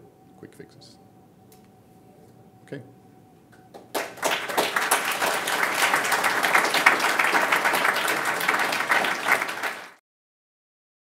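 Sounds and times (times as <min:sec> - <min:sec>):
audience applauding: 0:03.7 - 0:10.0.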